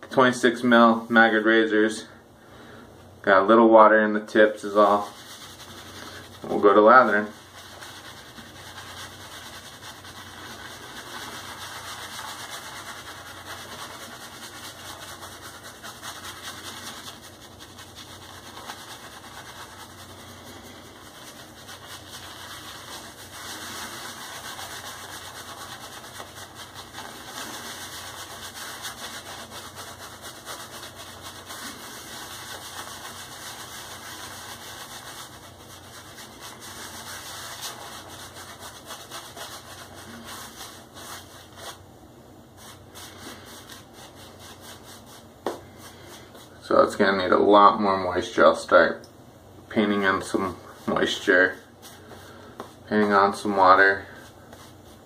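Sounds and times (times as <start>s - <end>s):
shaving brush rubbing lather on skin: 4.6s - 41.8s, 42.6s - 46.6s, 50.0s - 55.0s.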